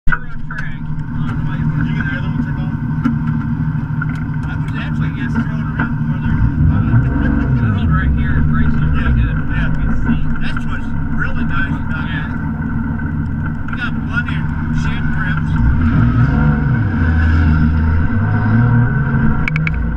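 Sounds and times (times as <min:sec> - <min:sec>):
car engine idling and revving: 0:00.1 - 0:19.9.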